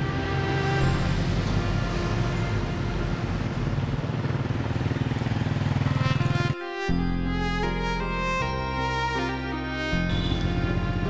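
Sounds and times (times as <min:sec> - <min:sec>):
quiet background music: 0:00.0 - 0:04.5, 0:05.9 - 0:11.0
car and motorbikes passing: 0:00.0 - 0:06.6.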